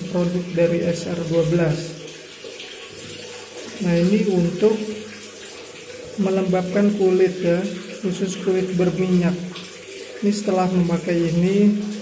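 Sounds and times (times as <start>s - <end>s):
water running from tap: 0.0s - 12.0s.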